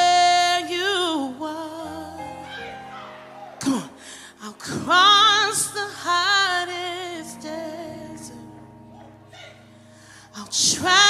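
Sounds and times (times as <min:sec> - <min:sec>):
woman singing with vibrato: 0:00.0 - 0:08.6, 0:10.3 - 0:11.0
sustained backing chords: 0:00.0 - 0:11.0.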